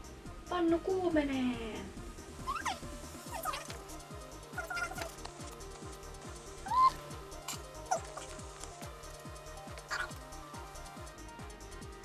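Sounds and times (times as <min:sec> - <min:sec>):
cat meowing: 0:02.4 - 0:03.8, 0:04.6 - 0:05.2, 0:06.6 - 0:07.1, 0:07.9 - 0:08.4, 0:09.8 - 0:10.2.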